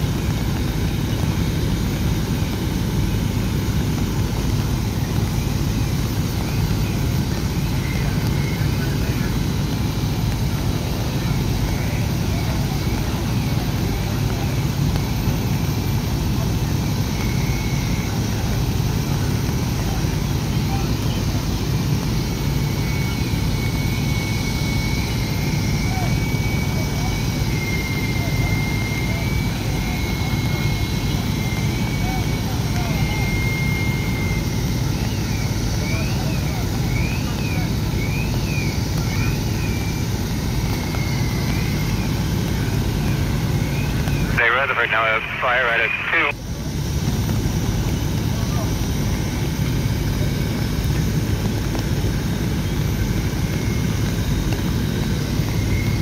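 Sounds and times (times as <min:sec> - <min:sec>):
diesel engines rumbling: 0:00.0 - 0:56.0.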